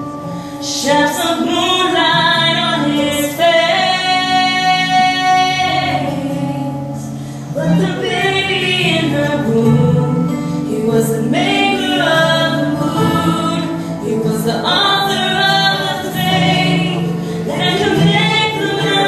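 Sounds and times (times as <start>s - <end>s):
woman singing gospel ballad: 0.4s - 19.0s.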